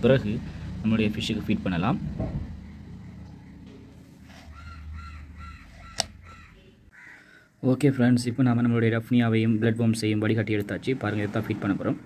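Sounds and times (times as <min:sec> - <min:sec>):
bird calling: 0:02.3 - 0:07.4.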